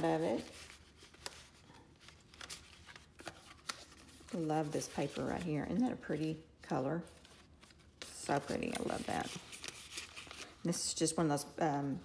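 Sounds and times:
paper rustling: 0.0 - 5.8, 7.0 - 10.8.

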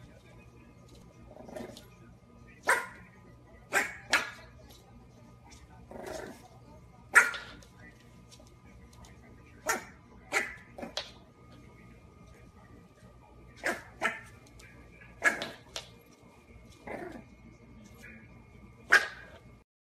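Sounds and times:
puppy barking: 2.6 - 3.0, 3.7 - 4.5, 7.1 - 7.6, 9.6 - 11.0, 13.6 - 14.4, 15.2 - 15.6, 18.9 - 19.4.

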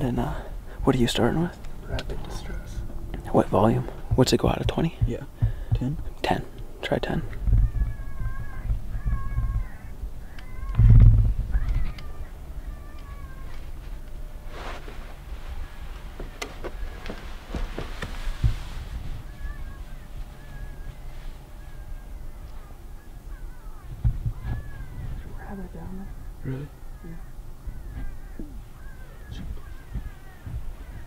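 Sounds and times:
low rumble: 0.0 - 31.0.

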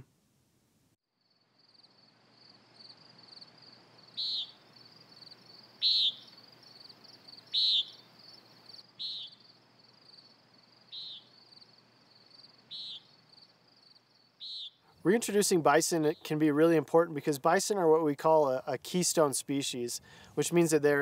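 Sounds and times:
insects trilling: 1.2 - 15.0.

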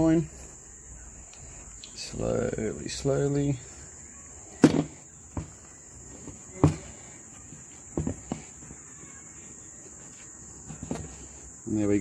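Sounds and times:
high-pitched insect chirr: 0.0 - 12.0.

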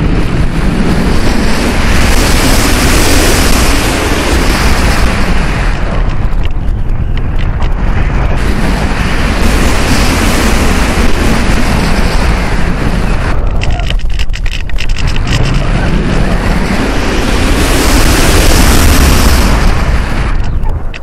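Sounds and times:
wind roar over microphone: 0.0 - 21.0.

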